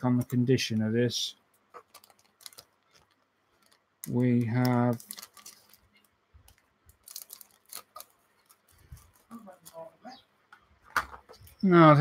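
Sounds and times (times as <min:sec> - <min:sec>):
plastic parts clicking: 0:01.7 - 0:09.2
plastic bag crinkling: 0:01.7 - 0:10.0.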